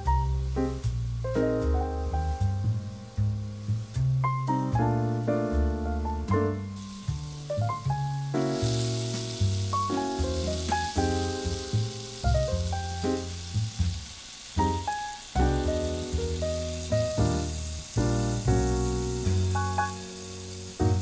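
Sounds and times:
food sizzling in a pan: 0.0s - 21.0s.

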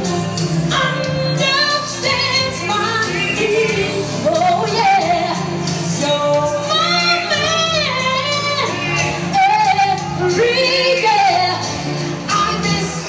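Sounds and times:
bass: 0.0s - 13.0s
woman singing: 0.0s - 13.0s.

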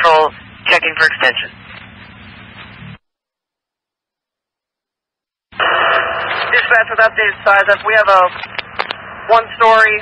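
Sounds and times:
radio static hiss: 5.6s - 10.0s.

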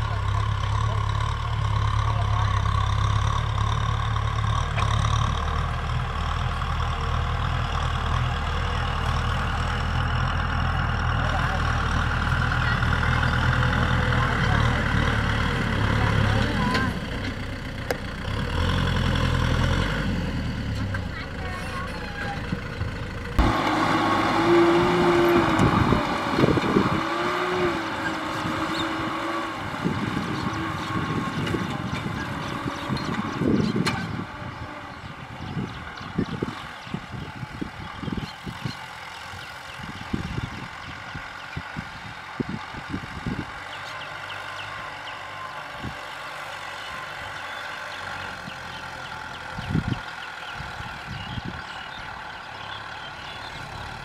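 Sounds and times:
tractor diesel engine under load: 0.0s - 54.0s.

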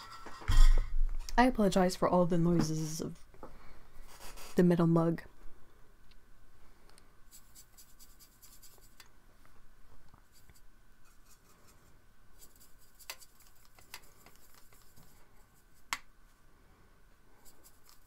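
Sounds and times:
paintbrush scrubbing in plastic palette: 7.3s - 9.0s, 10.3s - 15.9s, 17.4s - 18.0s.

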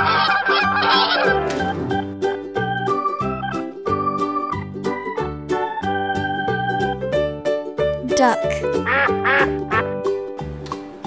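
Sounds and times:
duck quacking: 0.0s - 1.4s, 8.8s - 10.0s
cheerful children's music: 0.0s - 11.0s.

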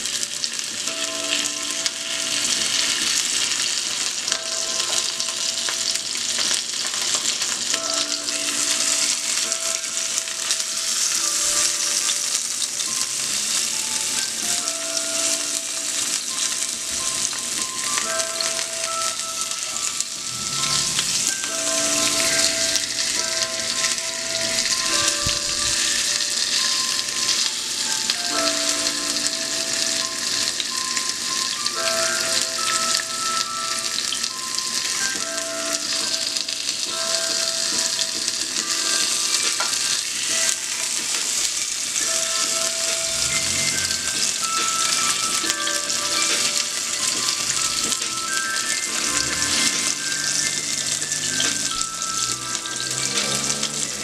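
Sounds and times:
fish sizzling in frying pan: 0.0s - 54.0s.

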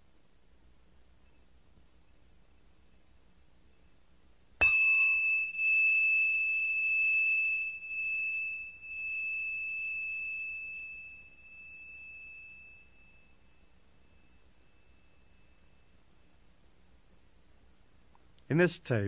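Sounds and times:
small bell ringing: 4.6s - 16.2s.

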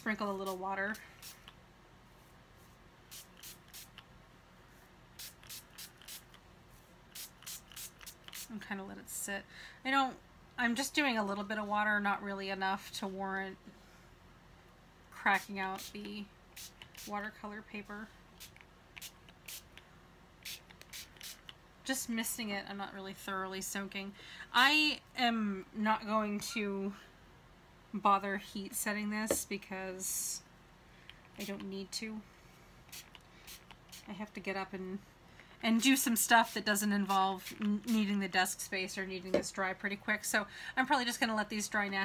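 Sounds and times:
water mister bottle spraying: 0.0s - 1.5s, 3.1s - 4.0s, 5.2s - 6.4s, 7.1s - 8.5s, 15.7s - 17.2s, 18.4s - 19.8s, 20.4s - 21.6s, 32.9s - 34.1s
spray bottle spritzes: 3.1s - 4.0s, 5.2s - 6.4s, 7.1s - 8.5s, 20.4s - 21.5s.

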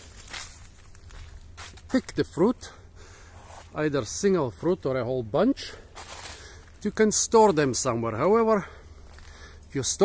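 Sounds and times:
footsteps on dry leaves: 0.0s - 2.2s, 5.9s - 9.6s.

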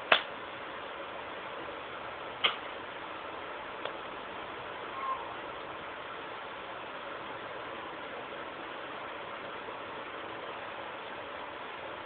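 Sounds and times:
room noise hiss: 0.0s - 12.0s
faint tone: 4.9s - 5.4s.

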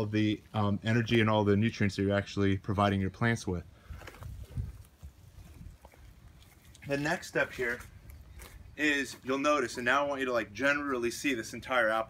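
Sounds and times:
footsteps on mulch: 3.8s - 11.1s.

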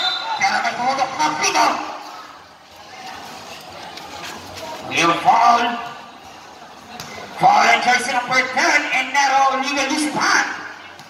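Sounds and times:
crowd murmur: 0.0s - 8.9s.

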